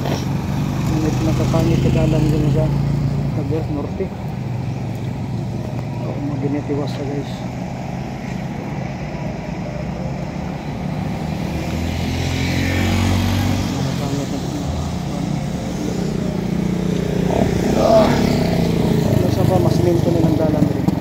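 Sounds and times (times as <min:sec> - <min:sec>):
tyre noise on wet road: 0:00.0 - 0:21.0
vehicle engine hum: 0:00.0 - 0:21.0
car passing by: 0:10.8 - 0:20.7.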